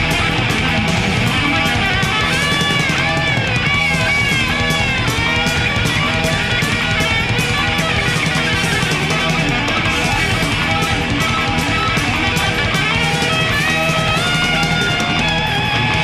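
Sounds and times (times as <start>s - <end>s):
instrumental heavy metal: 0.0s - 16.0s.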